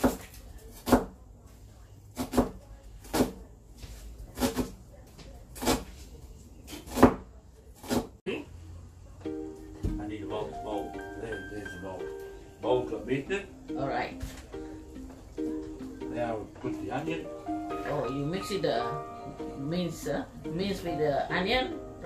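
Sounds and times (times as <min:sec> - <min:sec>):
knife chopping on plastic board: 0:00.0 - 0:01.2, 0:02.2 - 0:03.4, 0:04.3 - 0:04.8, 0:06.7 - 0:08.2
plucked ukulele music: 0:09.2 - 0:19.5.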